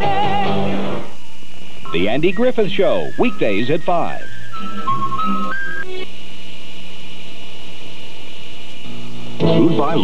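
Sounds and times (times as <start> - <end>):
faint high whine: 0.0 - 10.0
steady tape hiss: 0.0 - 10.0.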